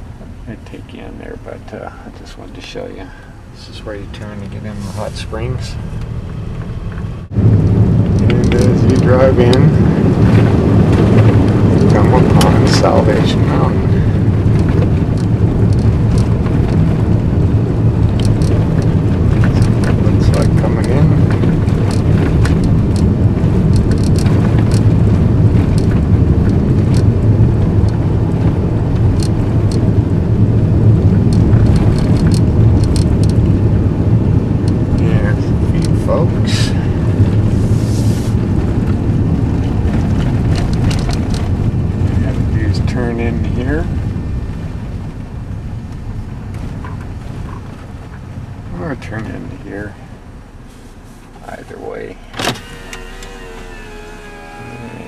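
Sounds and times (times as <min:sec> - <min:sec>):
vehicle engine and tyre drone: 0:00.0 - 0:55.0
clicks and rattles: 0:14.5 - 0:17.0, 0:18.1 - 0:23.1, 0:23.7 - 0:27.2, 0:39.6 - 0:41.6.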